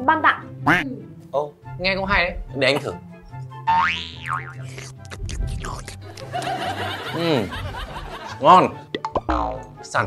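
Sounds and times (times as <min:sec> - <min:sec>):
light background music: 0:00.0 - 0:10.0
cartoon boing sound effect: 0:09.1 - 0:09.7.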